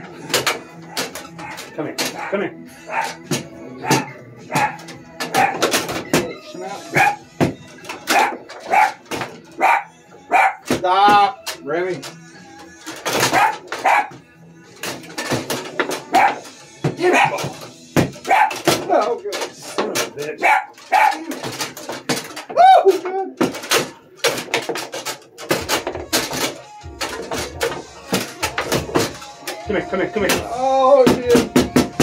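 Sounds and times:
foosball clacks and knocks: 0.0s - 2.3s, 2.9s - 6.3s, 7.0s - 9.8s, 12.8s - 14.2s, 14.8s - 29.6s, 30.2s - 32.0s
dog whining: 2.2s - 3.2s.

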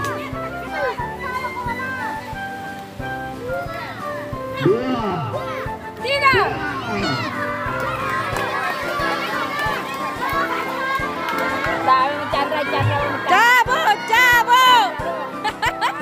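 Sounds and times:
crowd shouting and cheering: 3.5s - 16.0s.

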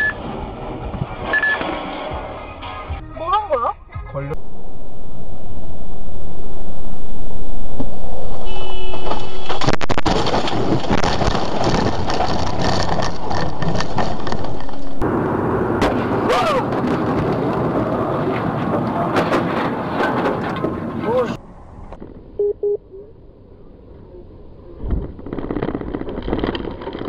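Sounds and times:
vehicle road and wind noise: 0.0s - 27.0s
crash clatter: 8.9s - 15.0s, 15.8s - 21.0s, 24.8s - 27.0s.

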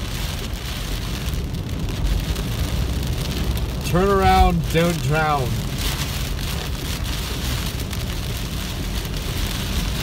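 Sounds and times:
car driving on wet road: 0.0s - 10.0s
heavy rain on car roof: 0.0s - 10.0s.

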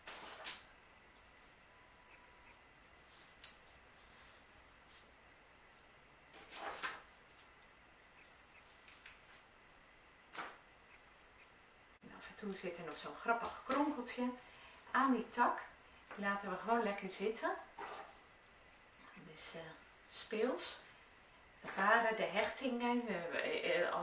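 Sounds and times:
twigs rustling and knocking: 5.8s - 9.5s.

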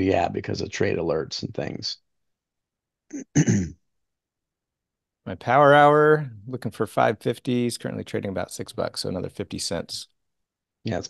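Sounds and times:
person clearing throat: 3.1s - 3.8s.

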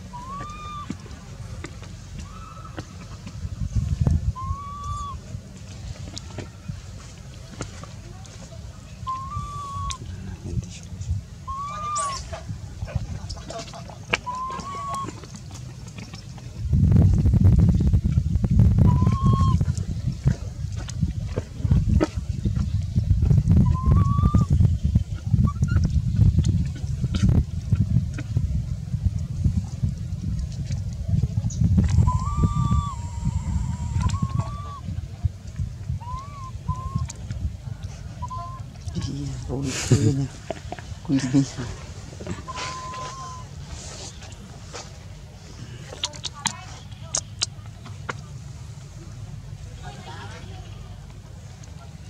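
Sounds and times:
infant monkey cooing cries: 0.0s - 0.9s, 9.1s - 10.0s, 11.5s - 12.3s, 32.1s - 34.8s, 36.0s - 37.0s, 42.4s - 43.5s
low rumble: 0.0s - 45.9s.

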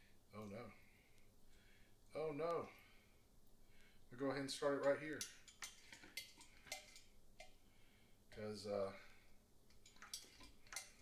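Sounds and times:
cane clinking on glass jug: 9.7s - 11.0s.

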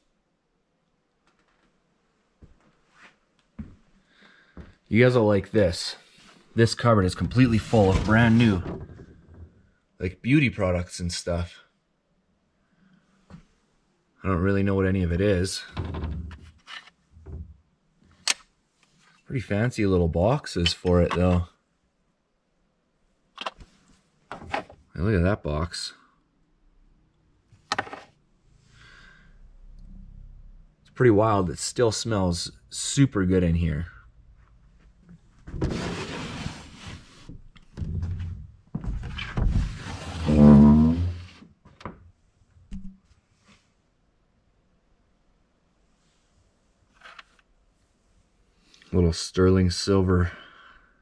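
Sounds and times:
boxes and tins scraping on shelf: 7.2s - 8.6s, 35.6s - 37.4s, 39.5s - 41.4s
door creak: 7.2s - 9.6s, 15.6s - 17.4s, 37.8s - 41.4s.

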